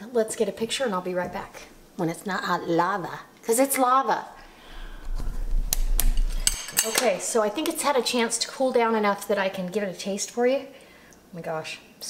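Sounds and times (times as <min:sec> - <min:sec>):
rumbling handling noise: 0:04.8 - 0:07.3
metal spoon clinking dishware: 0:06.2 - 0:07.3.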